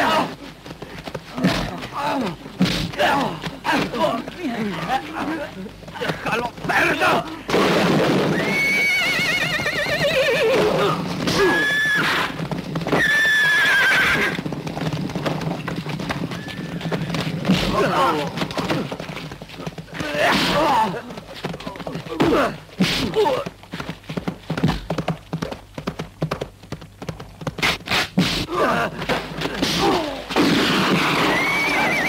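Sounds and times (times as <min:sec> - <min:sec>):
hooves moving about: 0:00.0 - 0:32.0
men grunting: 0:01.3 - 0:07.5, 0:20.0 - 0:21.2, 0:22.1 - 0:23.5, 0:28.4 - 0:30.4
horses whinnying: 0:06.0 - 0:23.5, 0:27.6 - 0:32.0.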